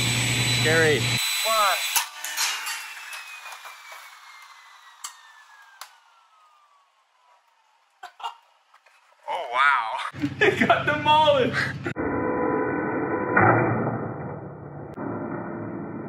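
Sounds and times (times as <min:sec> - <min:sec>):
table saw running hum: 0:00.0 - 0:08.0
saw whine winding down: 0:00.0 - 0:08.8
click: 0:05.0 - 0:06.0.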